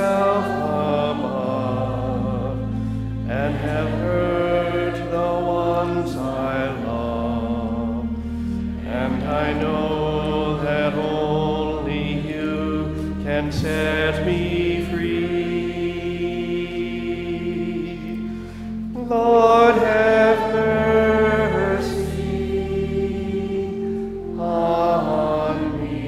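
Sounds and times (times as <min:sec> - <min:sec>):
low bass notes: 0:00.0 - 0:26.0
people singing a worship song: 0:00.0 - 0:26.0.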